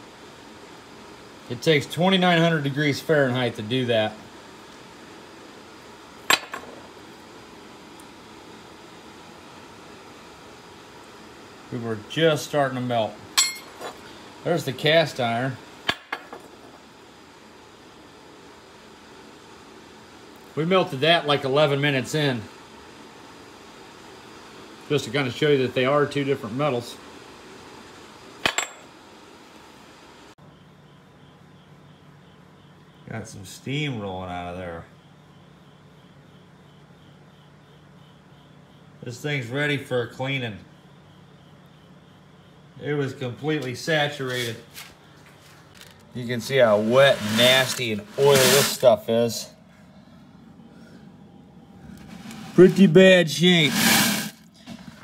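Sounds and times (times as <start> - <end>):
steady background hiss: 0.0 - 55.0
steady low hum: 0.0 - 55.0
metal clinking on steel bench: 13.4 - 14.0.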